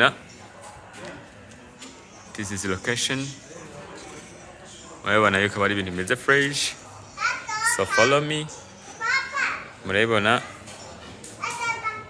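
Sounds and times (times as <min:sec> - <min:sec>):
children calling in background: 0:00.0 - 0:12.0.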